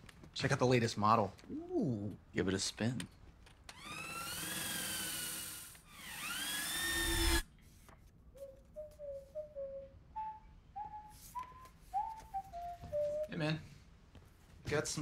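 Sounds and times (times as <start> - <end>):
stick vacuum cleaner motor whine: 3.7 - 7.4
faint flute melody: 8.3 - 13.7.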